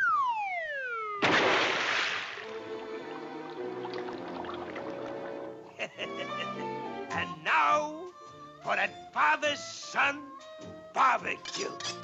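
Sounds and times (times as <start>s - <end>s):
body splashing into pool: 1.2s - 2.9s
soft orchestral music: 2.4s - 12.0s.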